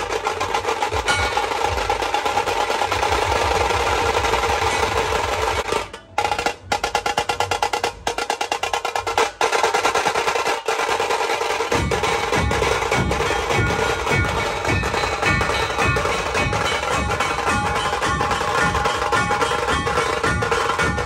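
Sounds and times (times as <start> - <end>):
deep dhol beats: 0.0 - 21.0
tasha drums rolling: 0.0 - 21.0.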